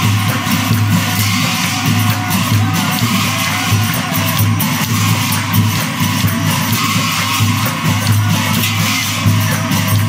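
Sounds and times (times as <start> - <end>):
hand cymbals clashing: 0.0 - 10.0
pulsing percussion beat: 0.0 - 10.0.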